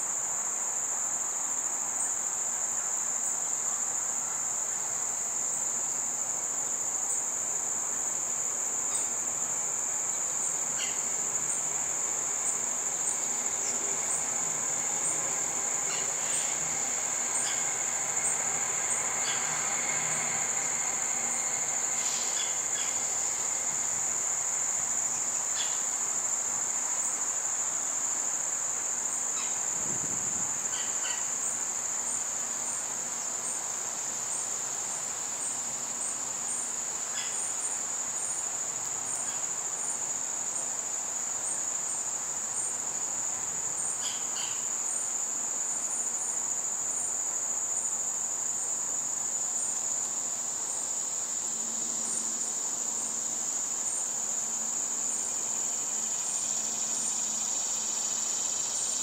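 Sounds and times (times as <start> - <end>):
crickets trilling: 0.0 - 59.0.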